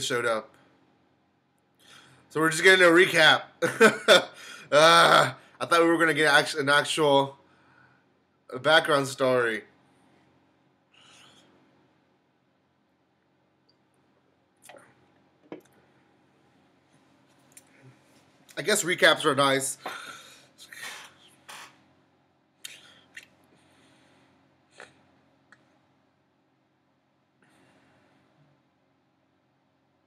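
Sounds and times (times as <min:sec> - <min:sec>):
faint short hiss: 0:19.9 - 0:21.8.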